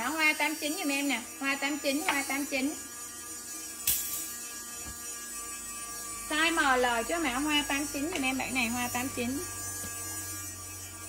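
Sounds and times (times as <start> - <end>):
electrical buzz and hum: 0.0 - 11.0.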